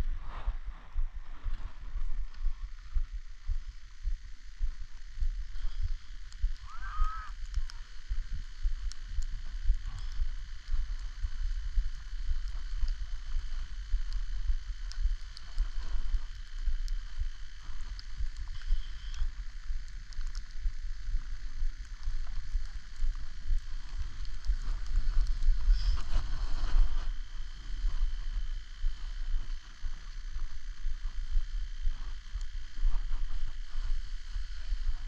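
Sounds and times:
skis hissing on snow: 0:23.8 - 0:28.2.

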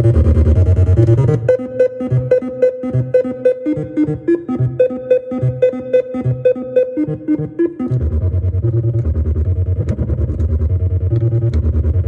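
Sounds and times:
synthesizer bass pattern: 0:00.0 - 0:12.0.

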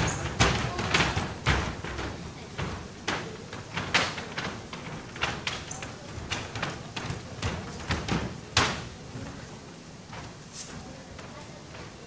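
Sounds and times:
feet thumping on wooden floor: 0:00.0 - 0:12.0.

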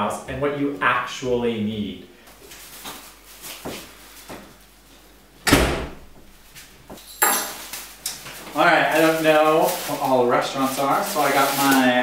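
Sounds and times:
door shutting with a thud: 0:05.4 - 0:06.3.

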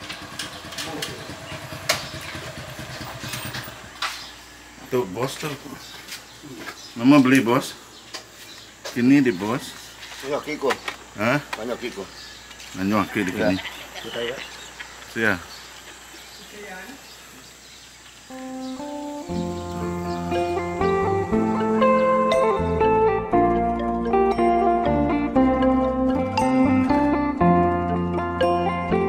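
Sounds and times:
motorcycle engine idling: 0:00.0 - 0:04.8
insects buzzing high-pitched: 0:00.6 - 0:23.7.

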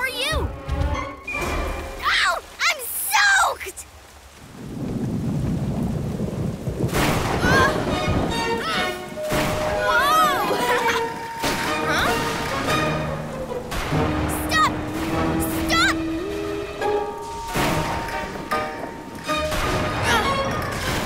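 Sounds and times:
rain: 0:00.0 - 0:21.0
rumble of thunder: 0:04.5 - 0:10.1.

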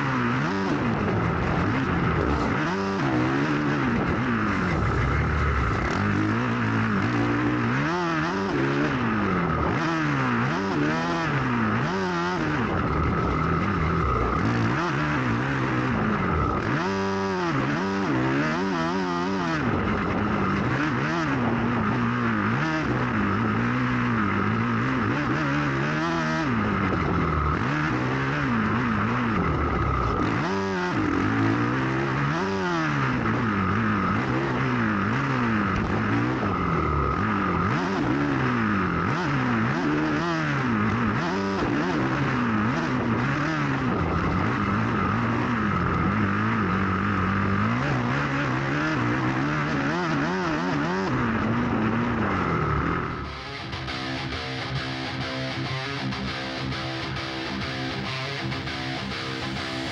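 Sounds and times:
motocross bike engine revving: 0:00.0 - 0:59.9.

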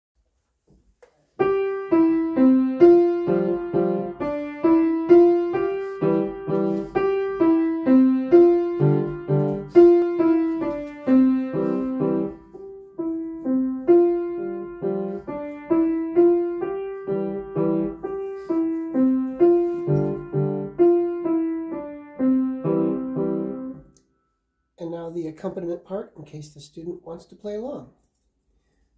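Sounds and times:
piano melody: 0:01.4 - 0:24.0.

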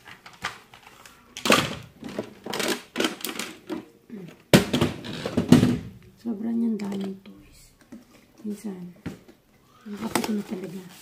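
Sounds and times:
plastic toys clattering: 0:00.0 - 0:05.9, 0:06.7 - 0:08.2.

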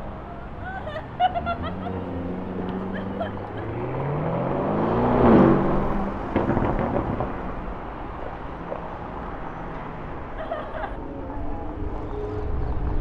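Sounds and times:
car engine accelerating: 0:01.2 - 0:10.2.

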